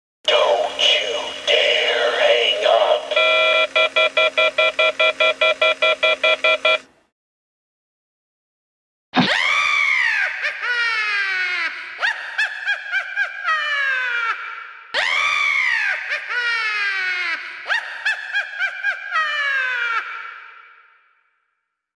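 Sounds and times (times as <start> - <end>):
witch cackling: 9.2 - 21.0.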